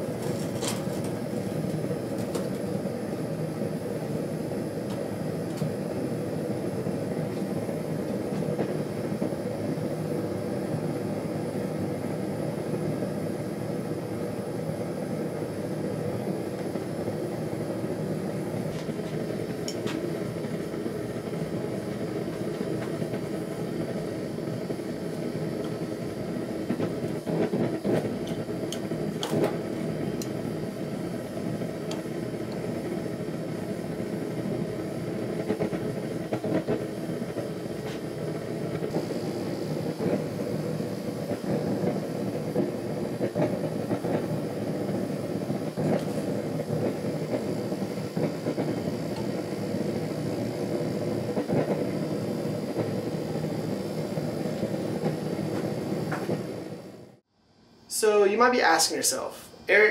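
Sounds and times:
forge burner roaring: 0.0 - 59.9.

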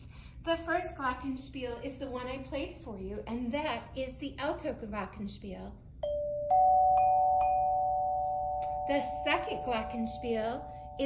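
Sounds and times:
glockenspiel notes ringing: 6.0 - 11.0.

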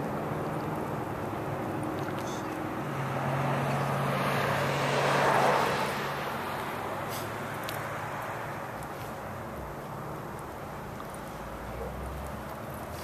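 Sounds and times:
car passing: 0.0 - 13.0
road traffic hum: 0.0 - 13.0.

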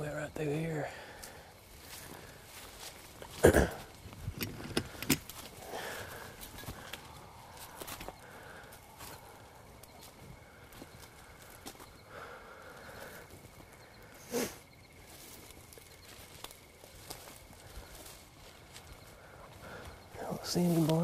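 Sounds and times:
rustling of brush and grass: 0.0 - 21.0
footsteps through undergrowth: 1.0 - 21.0.

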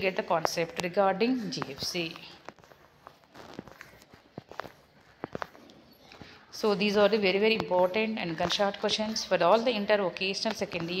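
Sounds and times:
faint irregular clicks and taps: 1.6 - 6.4.

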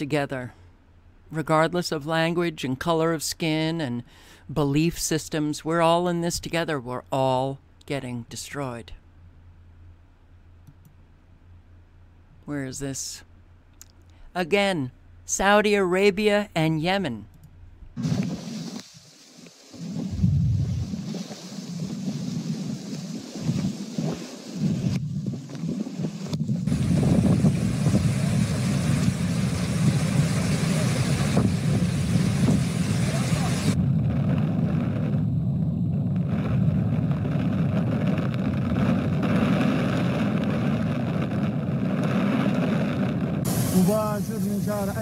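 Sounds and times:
heavy rain: 18.0 - 24.6, 26.7 - 33.8, 43.5 - 45.0
wind buffeting microphone: 19.8 - 45.0.

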